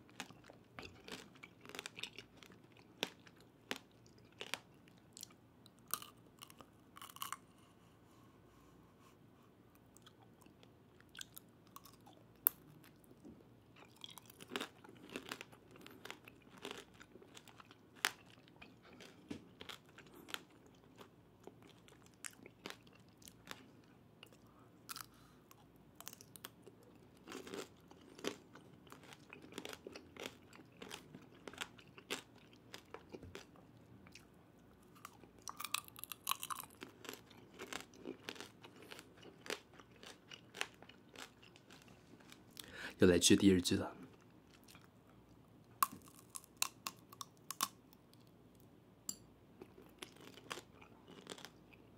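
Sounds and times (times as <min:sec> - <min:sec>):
candy shell cracking and crunching: 0:45.8 - 0:47.8.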